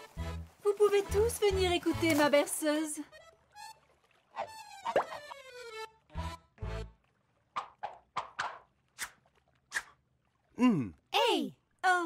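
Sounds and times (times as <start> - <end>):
light music: 0.0 - 7.1
short plops: 7.5 - 10.0.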